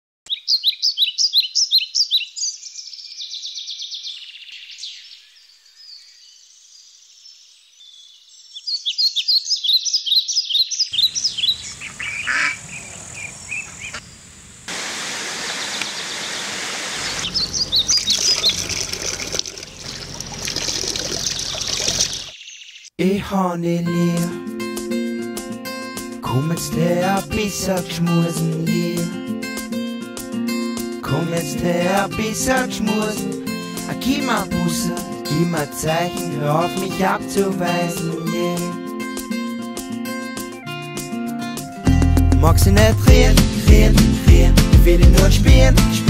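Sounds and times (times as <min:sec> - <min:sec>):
small birds chirping: 0:00.3 - 0:14.7, 0:15.4 - 0:23.0
water pouring from spout: 0:17.9 - 0:22.3.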